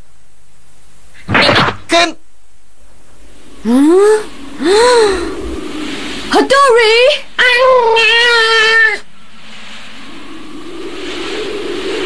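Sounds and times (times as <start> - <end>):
cartoon wind-like rushing noise: 3.2 - 12.0.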